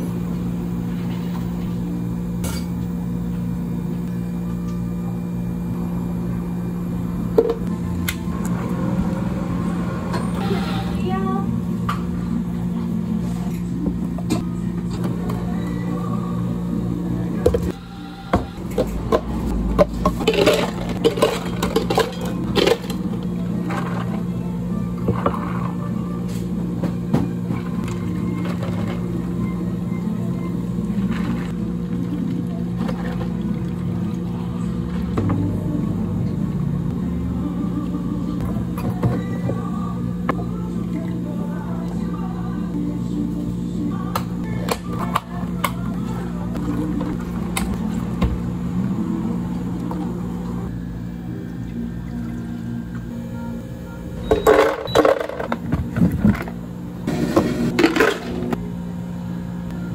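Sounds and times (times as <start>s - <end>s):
low hum of cafe equipment: 0.0s - 59.9s
ice cubes clattering into cups: 20.2s - 23.0s.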